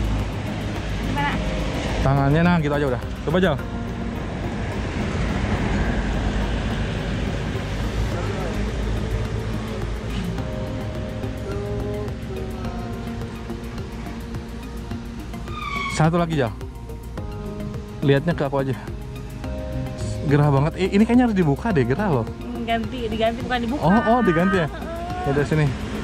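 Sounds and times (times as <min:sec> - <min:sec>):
background music: 0:00.0 - 0:26.0
heavy low rumble: 0:00.0 - 0:26.0.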